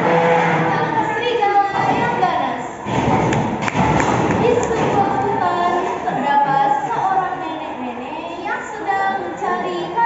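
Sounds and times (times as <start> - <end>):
girl speaking: 0.8 - 2.7.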